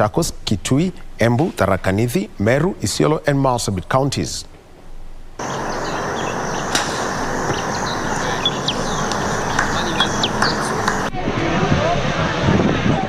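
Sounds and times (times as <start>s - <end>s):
background noise wash: 0.0s - 13.0s
small birds chirping: 5.4s - 11.1s.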